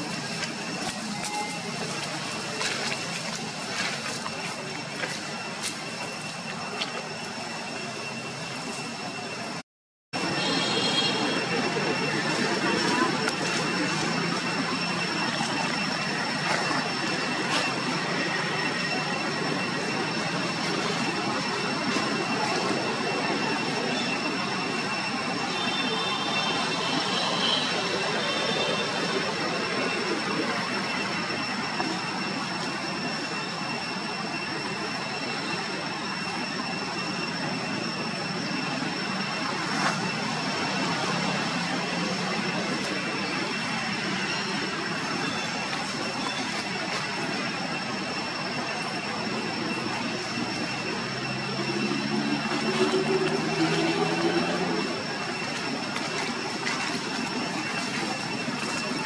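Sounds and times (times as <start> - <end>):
high-pitched whine: 0.0 - 9.6, 10.2 - 59.0.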